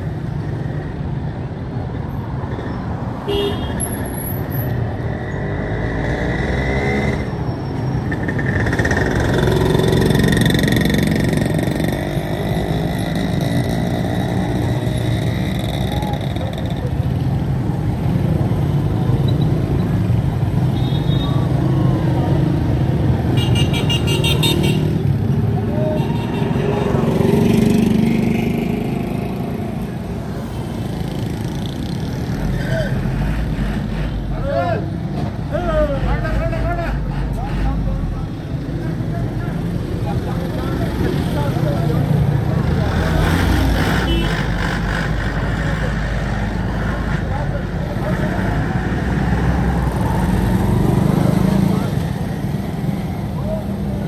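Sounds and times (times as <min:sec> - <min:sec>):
motorcycles and cars passing: 0:00.0 - 0:54.0.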